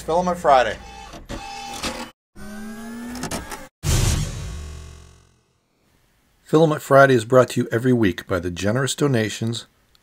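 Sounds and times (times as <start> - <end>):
whirring motor-like tone rising: 2.4 - 5.5
loud low hit: 3.8 - 5.6.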